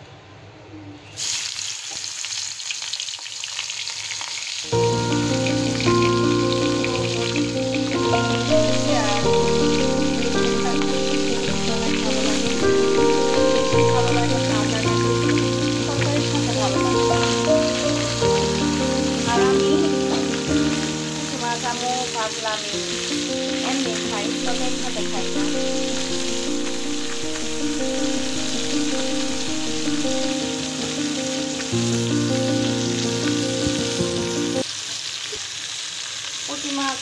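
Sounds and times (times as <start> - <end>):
fish sizzling in hot oil: 1.2 - 37.0
background music: 4.7 - 34.6.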